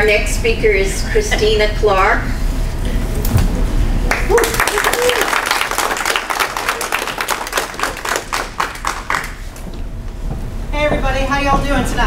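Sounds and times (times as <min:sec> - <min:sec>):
audience applause: 0:04.0 - 0:09.5.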